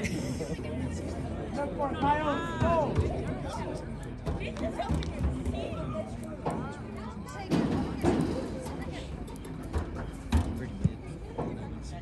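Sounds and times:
spectators and players calling out: 0:01.0 - 0:11.7.

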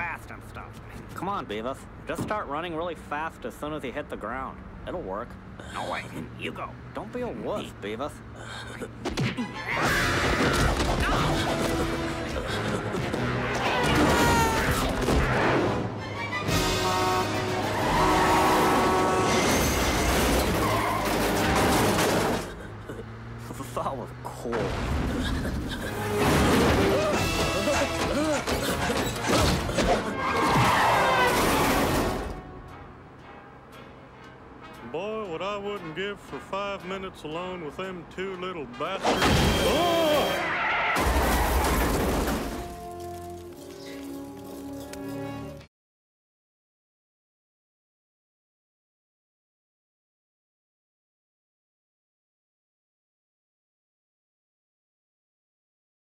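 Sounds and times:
cars crashing: 0:08.2 - 0:32.6, 0:38.8 - 0:43.4
film score music: 0:09.5 - 0:23.0, 0:25.3 - 0:40.4
crashing and booming impacts: 0:26.0 - 0:32.4
soft film score chords: 0:32.3 - 0:39.0.

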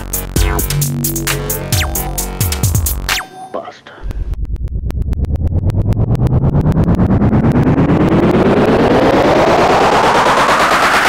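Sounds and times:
upward sweeping tone: 0:00.4 - 0:03.7.

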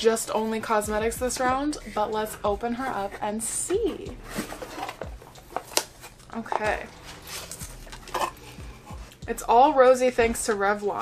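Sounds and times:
cardboard and packaging rustling: 0:02.8 - 0:09.2.

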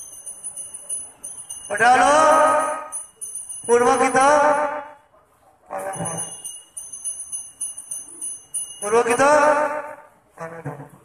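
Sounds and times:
small metal bells ringing: 0:00.0 - 0:05.0, 0:05.8 - 0:09.9.

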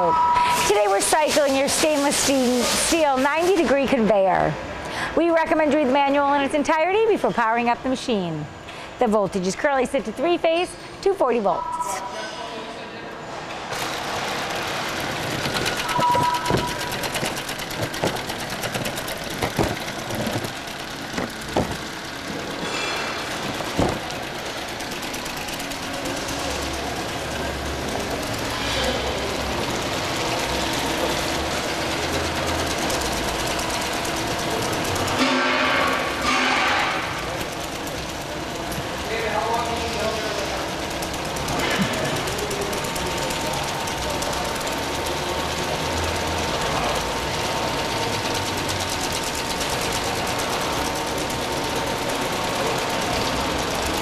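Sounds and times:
conveyor running: 0:00.0 - 0:54.0.

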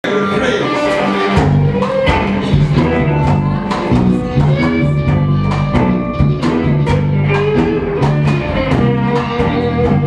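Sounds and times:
bass guitar: 0:00.0 - 0:10.0
drum kit steady beat: 0:00.0 - 0:10.0
electric guitar lines: 0:00.0 - 0:10.0.

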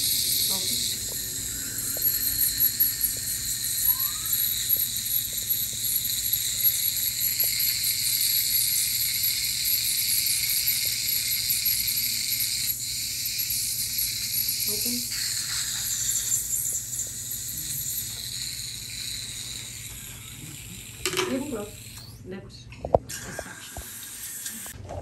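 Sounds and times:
saliva ejector sucking: 0:00.0 - 0:22.2
ultrasonic dental scaler hiss: 0:00.0 - 0:22.2, 0:23.1 - 0:24.8.

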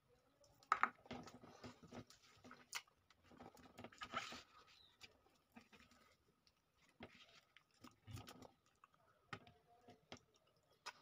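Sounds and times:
soft chewing clicks: 0:05.0 - 0:11.0.

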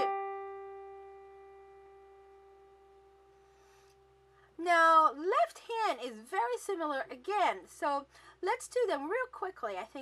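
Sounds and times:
piano note ringing: 0:00.0 - 0:03.4.

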